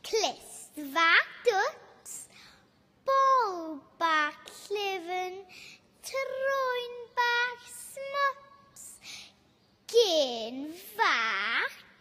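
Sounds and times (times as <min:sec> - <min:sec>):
girl reciting a poem: 0:00.0 - 0:12.0.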